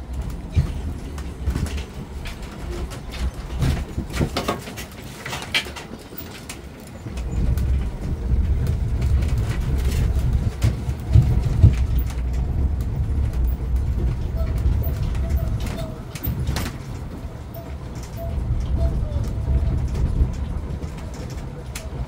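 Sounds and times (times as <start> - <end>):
road train rumble: 0.0 - 22.0.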